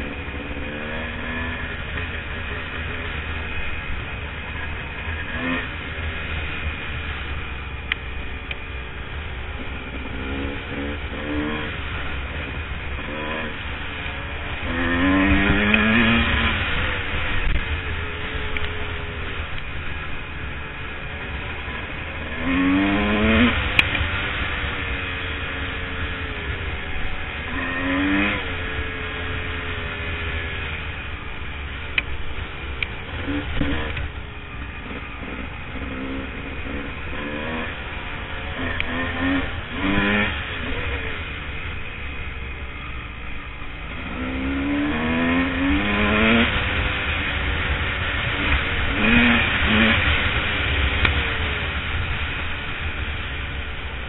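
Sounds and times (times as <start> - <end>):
dirt bike engine revving: 0.0 - 7.0, 9.5 - 19.5, 20.3 - 30.9, 32.7 - 42.8, 43.5 - 54.0.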